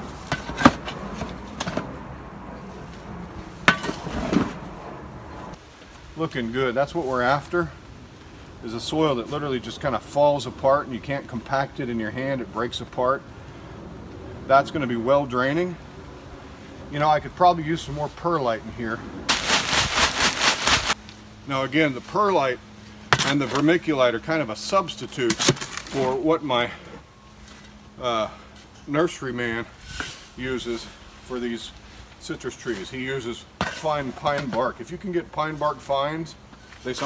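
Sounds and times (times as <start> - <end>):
shovel scraping rustle: 3.6 - 4.6, 19.3 - 21.0, 25.1 - 26.3, 29.6 - 34.6, 36.5 - 37.0.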